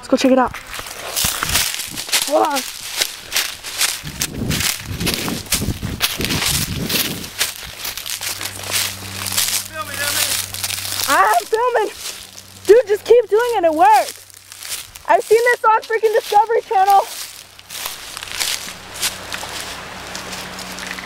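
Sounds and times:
footsteps crunching through dry leaves: 0.5 - 21.0
child calling out: 2.2 - 2.7, 11.0 - 12.0.

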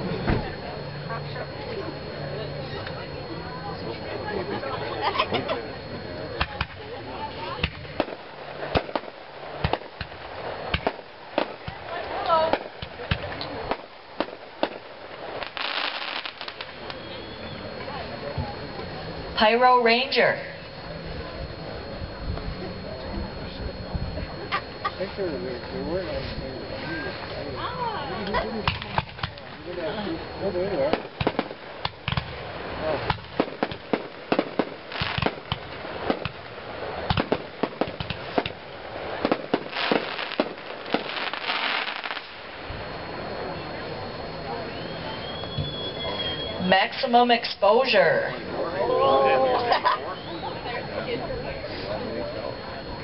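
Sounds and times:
firework crackling: 0.0 - 53.0
firework shells bursting: 7.6 - 18.5, 30.8 - 42.9.

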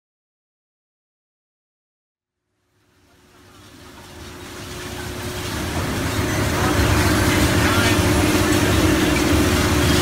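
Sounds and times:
shredder machine rumbling: 3.4 - 10.0.

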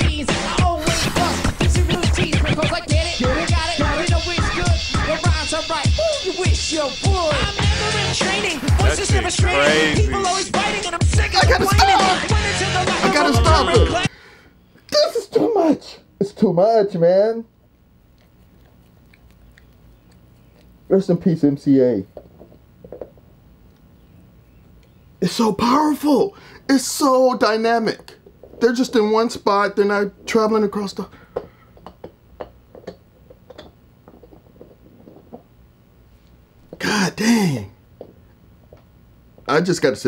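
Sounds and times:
low background hum: 0.0 - 40.0
dog chewing: 18.0 - 20.9.

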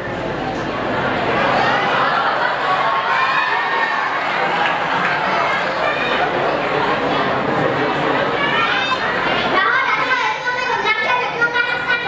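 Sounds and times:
boy speaking into microphone: 8.2 - 12.0.

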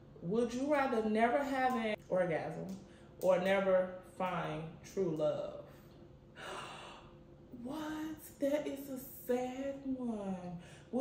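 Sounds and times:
woman speaking: 0.2 - 5.8, 6.4 - 11.0
woman gasping: 6.4 - 7.2.

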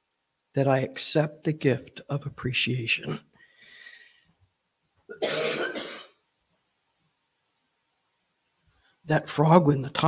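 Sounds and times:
woman clearing throat: 5.1 - 6.2
woman coughing: 5.1 - 6.2.

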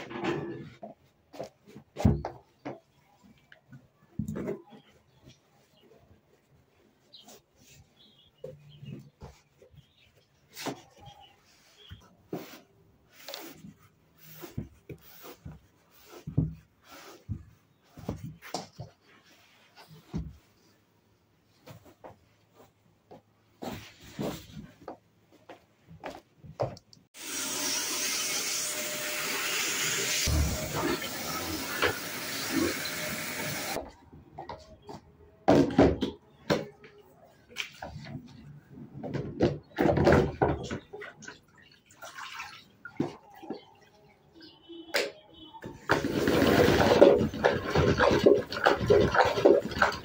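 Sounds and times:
vacuum cleaner on laminate floor: 27.2 - 33.8, 45.9 - 47.2.

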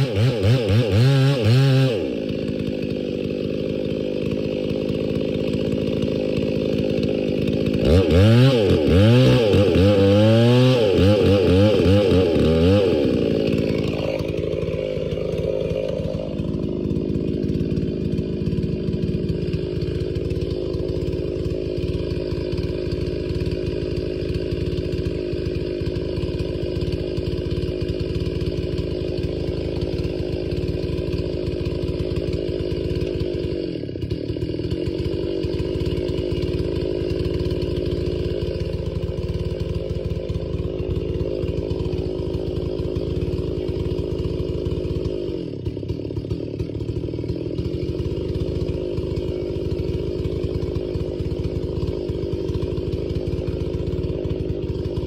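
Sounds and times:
chainsaw running at high revs: 0.0 - 55.0.

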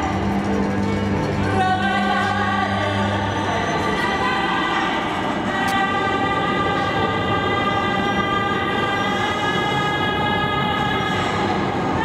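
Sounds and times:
violin: 0.0 - 12.0.

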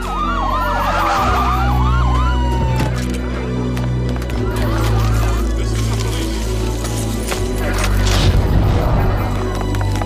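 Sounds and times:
siren sound effect: 0.0 - 3.0.

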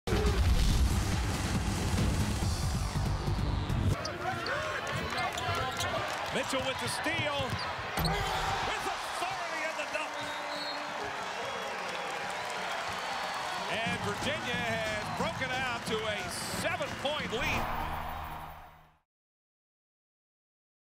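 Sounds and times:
intro music with heavy bass: 0.6 - 4.0
arena crowd noise: 2.7 - 19.0
sports commentator calling excitedly: 4.0 - 10.9, 13.7 - 18.1.

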